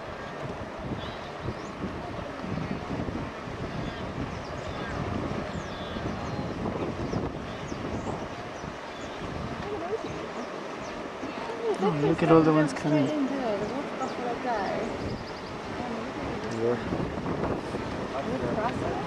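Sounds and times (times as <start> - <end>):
water churning and splashing: 0.0 - 19.0
wind buffeting microphone: 0.0 - 19.0.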